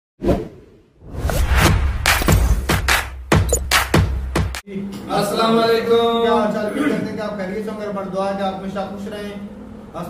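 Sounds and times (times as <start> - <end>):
whoosh: 0.2 - 2.8.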